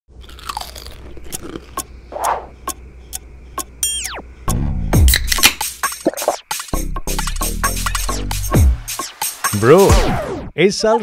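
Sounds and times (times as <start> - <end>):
person chewing potato chips: 0.1 - 1.9.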